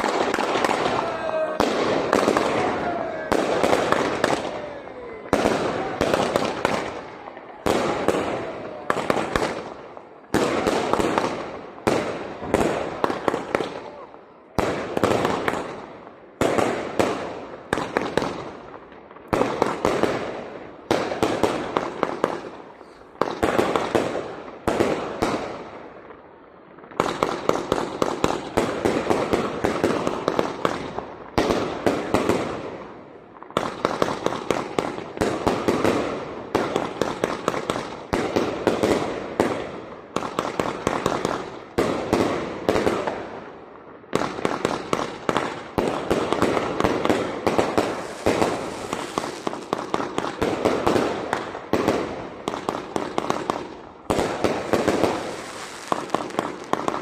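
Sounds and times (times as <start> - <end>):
fireworks crackling: 0.0 - 57.0
fireworks launching and banging: 0.0 - 57.0.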